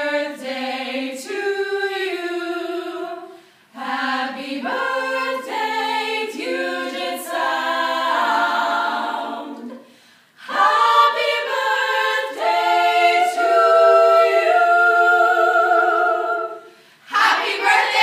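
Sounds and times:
women singing in close harmony: 0.0 - 18.0.

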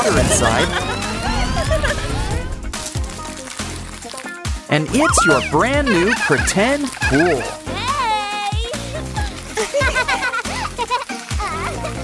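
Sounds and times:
background music: 0.0 - 12.0
paper splashing sounds: 2.8 - 11.7
woman and girl laughing and squealing: 5.0 - 7.6.

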